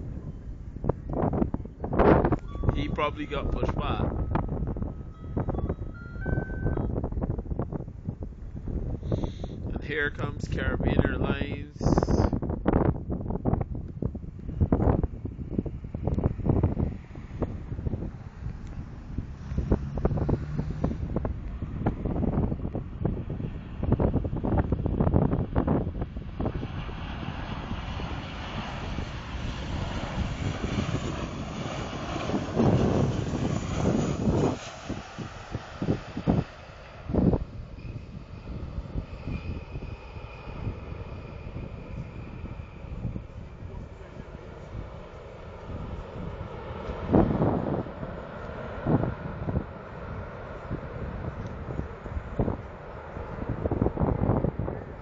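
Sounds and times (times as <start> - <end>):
jet engines rushing: 0.0 - 55.0
wind buffeting microphone: 0.0 - 55.0
faint high whine: 2.2 - 7.4, 35.8 - 46.8.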